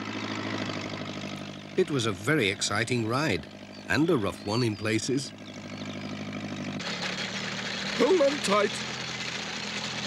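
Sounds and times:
tractor engine running: 0.0 - 10.0.

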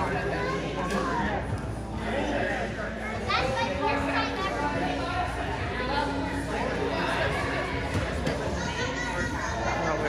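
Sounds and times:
children chattering: 0.0 - 1.4, 2.3 - 10.0.

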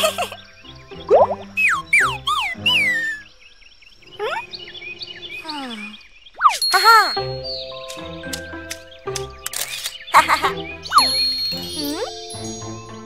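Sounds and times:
playful cartoon music: 0.0 - 3.3, 6.4 - 13.0.

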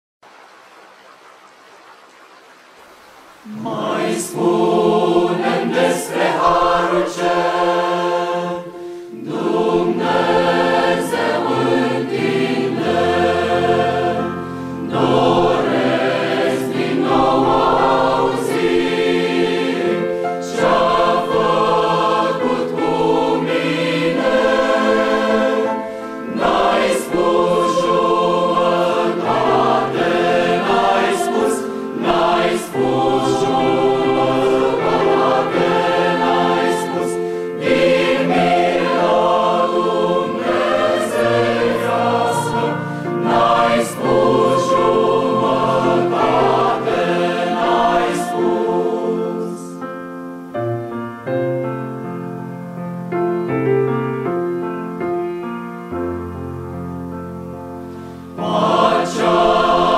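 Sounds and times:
piano accompaniment: 2.9 - 59.9
choir singing a hymn: 3.4 - 51.5, 57.8 - 59.9.

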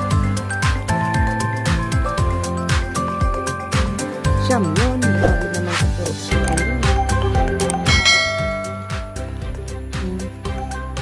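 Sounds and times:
background music with steady beat: 0.0 - 11.0
notification bell ding: 6.3 - 9.2.

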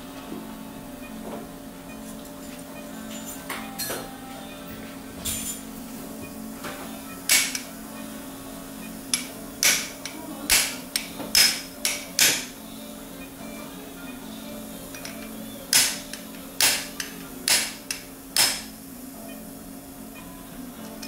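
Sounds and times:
mallet striking metal impactor: 7.3 - 7.6, 15.7 - 18.7.

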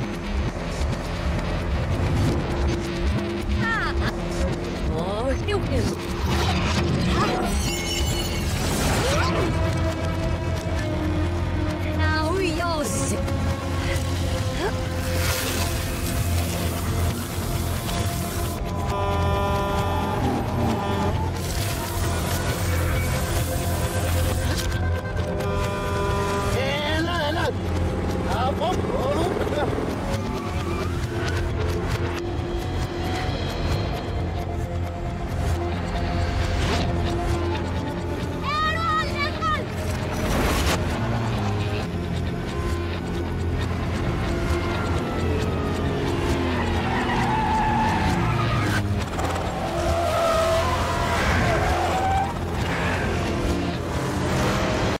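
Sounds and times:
action movie music: 0.0 - 55.0
truck engine rumble: 0.0 - 55.0.

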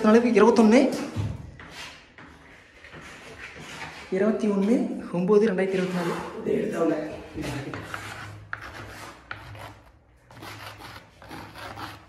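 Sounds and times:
stone scraping plaster wall: 0.0 - 12.0.

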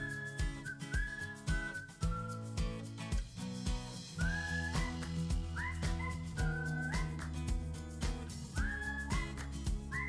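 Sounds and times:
whistled melody: 0.0 - 3.2, 4.0 - 10.0
steady beat: 1.5 - 10.0.

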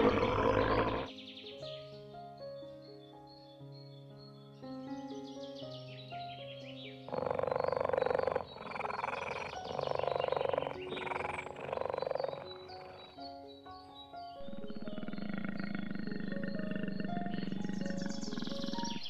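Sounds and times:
big cat growling: 0.0 - 1.1, 7.1 - 13.2, 14.4 - 19.0
background music: 0.0 - 19.0.

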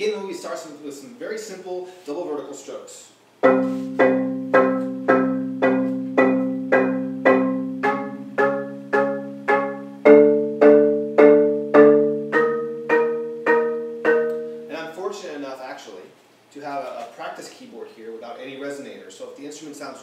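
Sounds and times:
marimba chords struck with mallets: 3.4 - 14.8.

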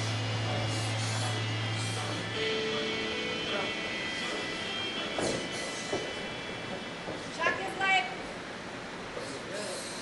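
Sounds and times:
faint indistinct voices: 0.0 - 8.3
steady low hum: 0.0 - 10.0.

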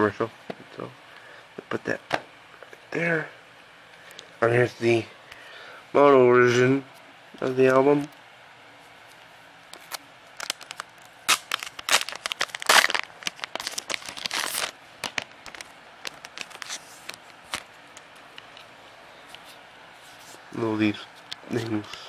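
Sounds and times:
plastic packaging crinkling: 9.8 - 17.8.

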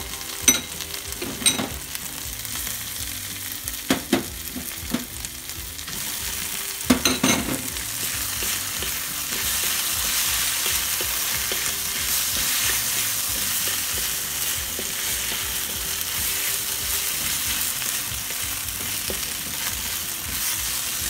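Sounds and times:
food sizzling in a hot pan: 0.0 - 21.0.

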